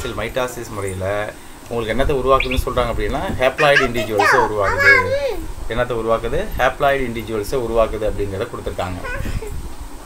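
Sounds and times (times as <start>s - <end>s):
person lecturing: 1.8s - 5.2s.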